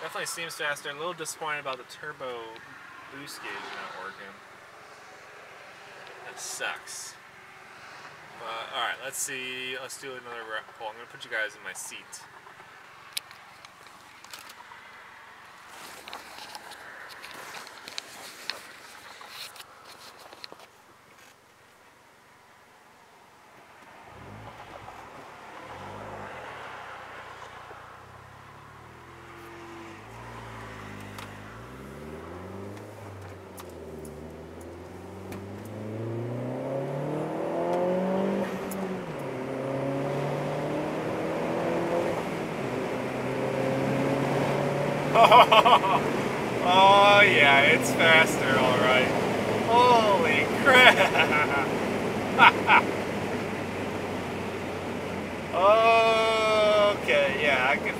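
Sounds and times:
car engine accelerating: 24.1 - 57.9.

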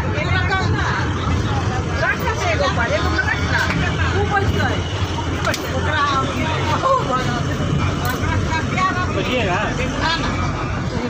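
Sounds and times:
bus engine rumble: 0.0 - 11.0
passengers talking: 0.0 - 11.0.

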